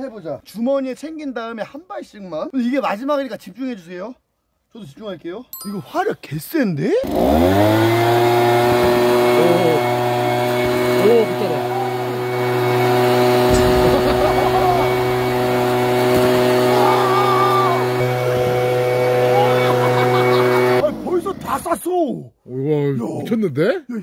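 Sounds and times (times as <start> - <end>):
leaf blower running: 7.0 - 20.8.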